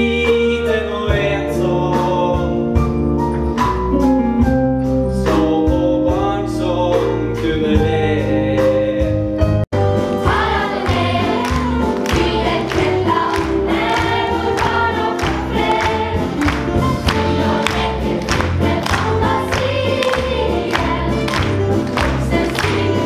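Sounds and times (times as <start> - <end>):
backing music with steady beat: 0.0 - 23.0
choir singing: 10.0 - 23.0.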